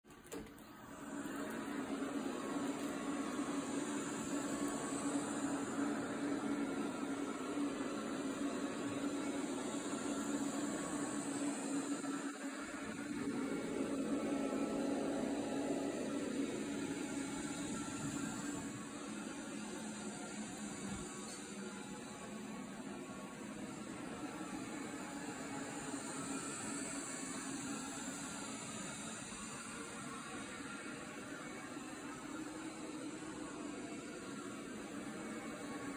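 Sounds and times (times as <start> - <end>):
robot vacuum cleaner hum: 0.3 - 35.9.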